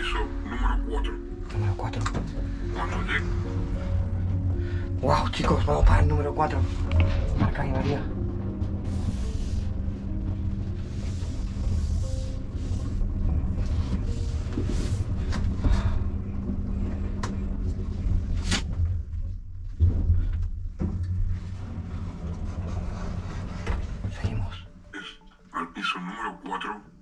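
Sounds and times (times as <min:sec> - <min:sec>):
lift hum and rumble: 0:00.0 - 0:24.9.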